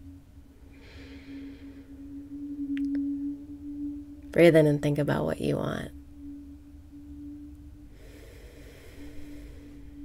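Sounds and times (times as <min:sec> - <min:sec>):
steady low hum: 0:00.0 - 0:10.0
woman breathing in: 0:00.7 - 0:02.3, 0:07.9 - 0:10.0.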